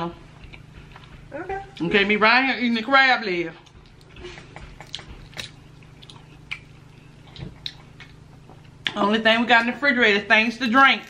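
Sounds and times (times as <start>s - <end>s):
soft chewing: 0.4s - 1.9s, 3.6s - 9.0s.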